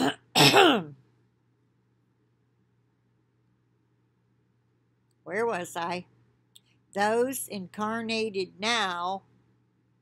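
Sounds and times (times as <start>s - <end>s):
woman clearing her throat: 0.0s - 1.0s.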